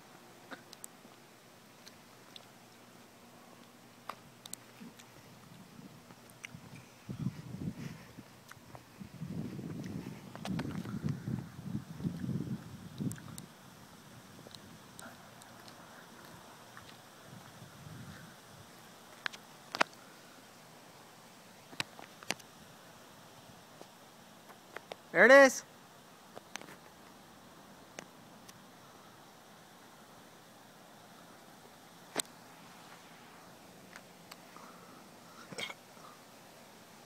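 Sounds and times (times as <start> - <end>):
faint background hiss: 0.0 - 37.0
wind buffeting microphone: 5.4 - 15.2, 17.2 - 18.7.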